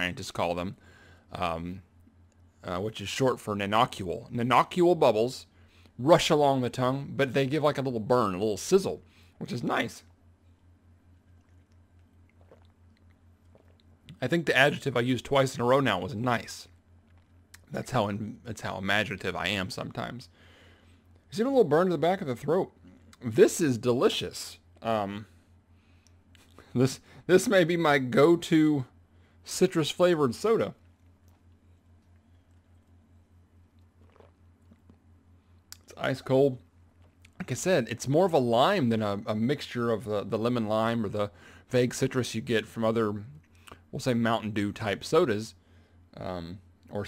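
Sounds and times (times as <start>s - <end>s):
low steady hum: 0.0s - 47.0s
mouth and lip sounds: 11.2s - 14.2s, 33.7s - 36.0s.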